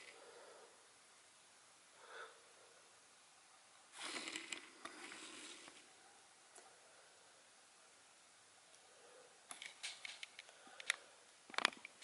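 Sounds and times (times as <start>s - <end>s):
handling rustling and scraping: 3.9s - 5.9s
sharp clicks: 9.5s - 12.0s.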